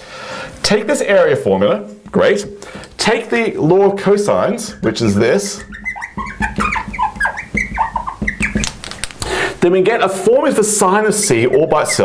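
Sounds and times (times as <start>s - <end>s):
marker squeaking on glass: 3.0s - 9.2s, 10.2s - 12.0s.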